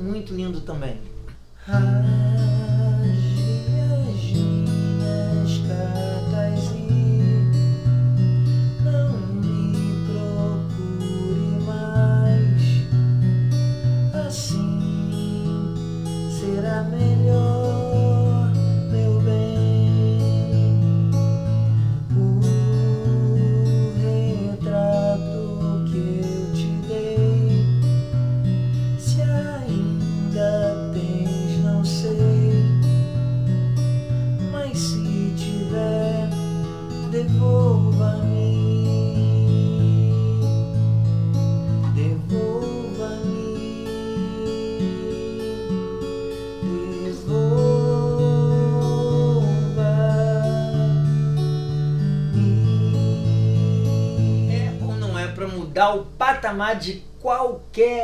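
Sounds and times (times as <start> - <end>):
fingerstyle acoustic guitar: 0.0 - 58.0.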